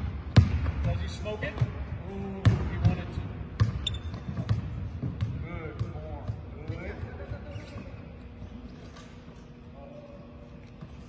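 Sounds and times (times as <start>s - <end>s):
basketball bouncing on hardwood: 3.6s - 6.9s.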